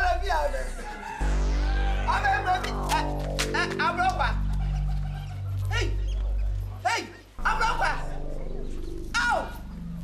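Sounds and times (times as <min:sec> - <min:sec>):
music with deep bass: 0:00.0 - 0:10.0.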